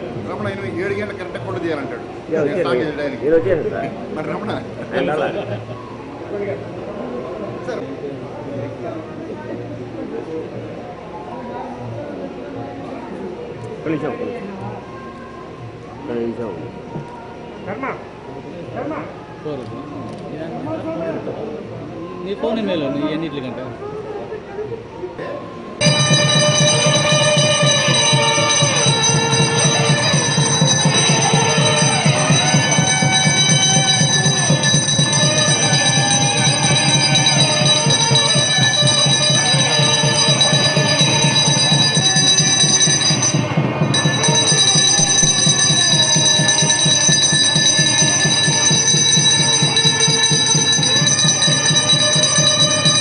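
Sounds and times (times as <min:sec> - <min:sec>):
bell ringing: 0:25.8 - 0:53.0
devotional music with fast beat: 0:25.8 - 0:53.0.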